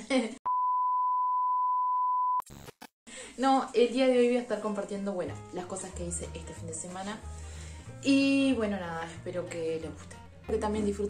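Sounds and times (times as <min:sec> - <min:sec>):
test-tone beep: 0:00.5 - 0:02.4.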